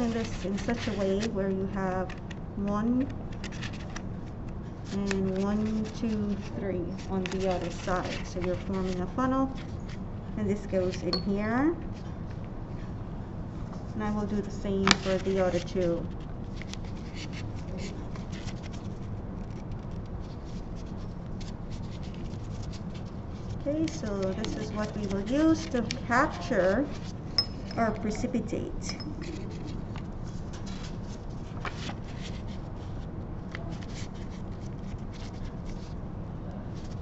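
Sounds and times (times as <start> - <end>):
filter paper crackling and rustling: 0.0 - 2.3, 3.0 - 10.0, 14.7 - 27.2, 29.2 - 36.0
low room hum: 0.0 - 37.0.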